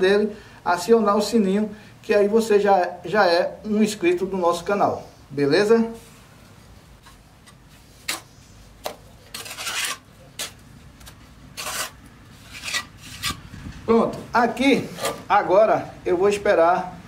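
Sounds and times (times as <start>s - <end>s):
trowel scraping mortar: 8.0s - 13.4s, 14.8s - 15.3s.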